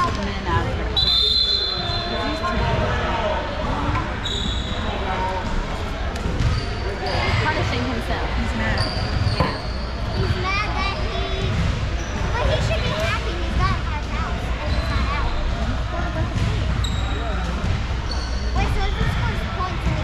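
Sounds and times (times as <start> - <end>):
sneaker squeaks: 0.9 - 2.8, 3.8 - 5.6, 6.2 - 7.8, 8.6 - 13.1, 14.6 - 15.8, 16.4 - 20.0.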